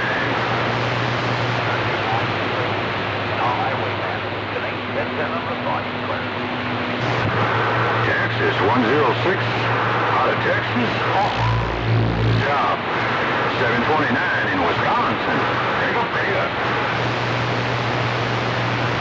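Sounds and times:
radio static: 0.0 - 6.3, 7.0 - 19.0
faint garbled radio voices: 0.0 - 19.0
low hum: 5.8 - 13.9.

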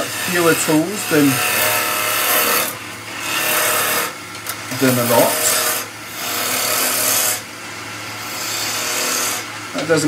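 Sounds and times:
lathe motor hum: 0.0 - 7.4, 8.2 - 10.0
wood lathe cutting wood: 0.0 - 7.5, 8.2 - 10.0.

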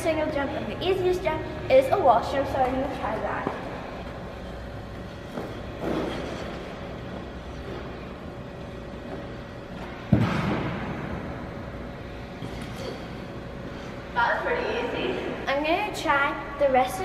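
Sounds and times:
steady hum: 0.0 - 17.0.

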